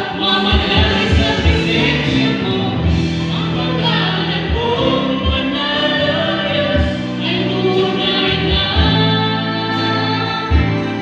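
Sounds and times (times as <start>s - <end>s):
deep bass notes: 0.0s - 11.0s
man singing: 0.0s - 11.0s
woman singing: 0.0s - 11.0s.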